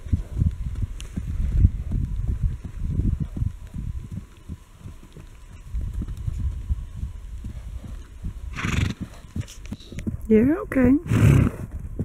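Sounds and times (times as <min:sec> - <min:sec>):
horse hoofbeats on hard ground: 0:00.0 - 0:12.0.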